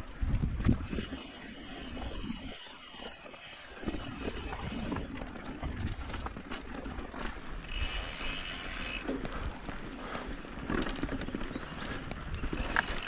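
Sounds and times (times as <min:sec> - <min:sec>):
bike tyres on dirt trail: 0:00.0 - 0:13.0
bike rattling over bumps: 0:00.2 - 0:13.0.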